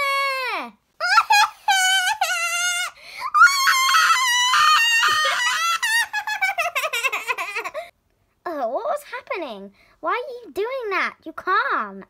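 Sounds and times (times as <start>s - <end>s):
high voice screaming: 1.0s - 6.6s.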